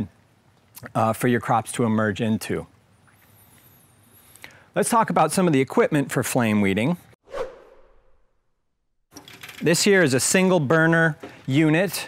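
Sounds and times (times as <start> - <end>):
swoosh sound effect: 7.3 - 8.5.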